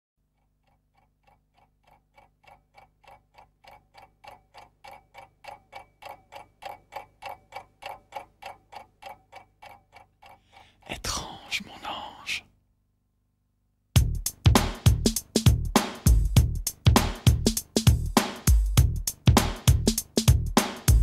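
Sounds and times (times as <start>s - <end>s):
clock-like ticking: 0.2s - 11.1s, 14.0s - 21.0s.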